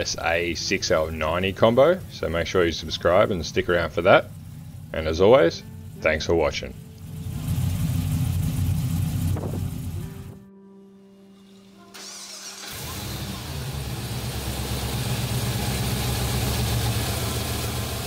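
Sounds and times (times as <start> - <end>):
car engine idling: 0.0 - 10.4, 12.0 - 18.0
car engine starting up: 0.0 - 10.4, 11.8 - 18.0.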